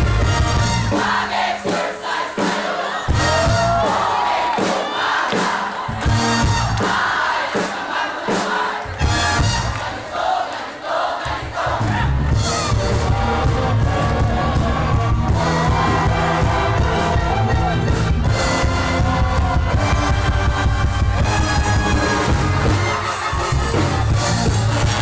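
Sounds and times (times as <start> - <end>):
brass band playing: 0.0 - 10.4, 11.6 - 25.0
crowd cheering and shouting: 0.0 - 25.0.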